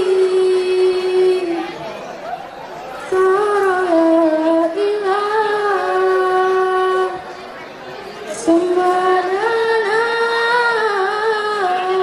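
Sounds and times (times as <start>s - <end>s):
girl singing into microphone: 0.0s - 1.9s, 3.0s - 7.4s, 8.3s - 12.0s.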